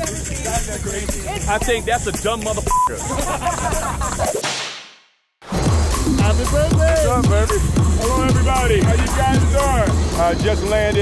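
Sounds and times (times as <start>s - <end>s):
music with heavy bass beat: 5.5s - 11.0s.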